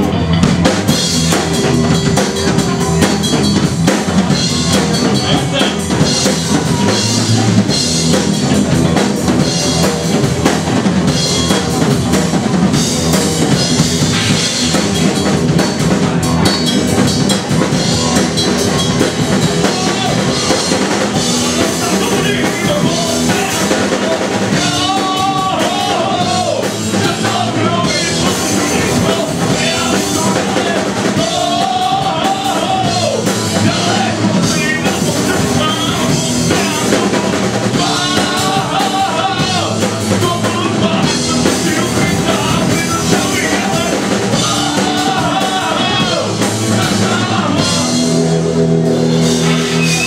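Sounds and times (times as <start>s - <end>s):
bass guitar: 0.0s - 50.0s
drum kit beat: 0.0s - 50.0s
rock band playing loud: 0.0s - 50.0s.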